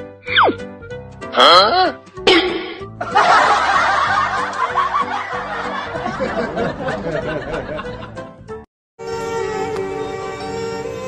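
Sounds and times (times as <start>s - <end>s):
background music with bass line: 0.0s - 11.0s
people snickering and chuckling: 2.3s - 8.2s.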